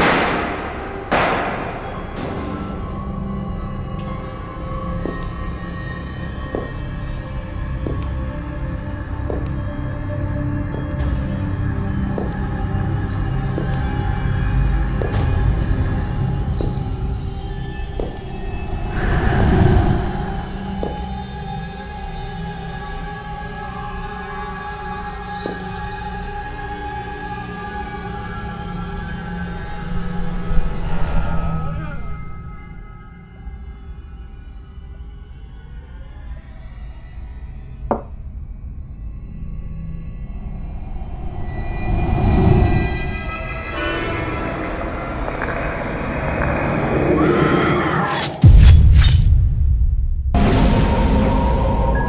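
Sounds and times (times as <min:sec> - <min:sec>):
tense horror film score: 0:00.0 - 0:52.0
low rumble: 0:15.5 - 0:22.1.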